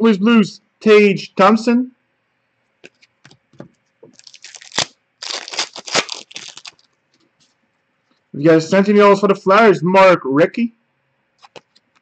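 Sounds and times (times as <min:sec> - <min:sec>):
foil wrapper crinkling and tearing: 0:04.1 - 0:06.9.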